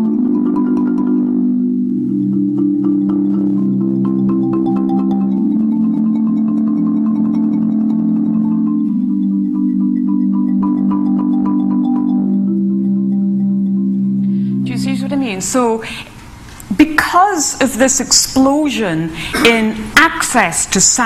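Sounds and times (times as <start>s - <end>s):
marimba mallet rolls: 0.0s - 15.8s.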